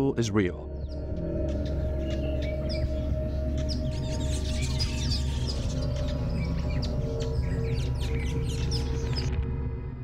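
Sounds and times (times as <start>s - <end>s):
background music drone: 0.0s - 10.0s.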